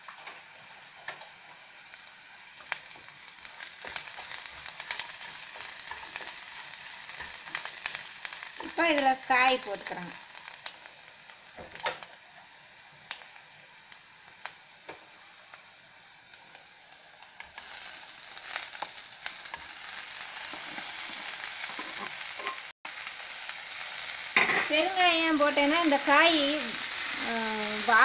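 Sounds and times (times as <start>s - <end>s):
oil sizzling in a pan: 0.0s - 28.0s.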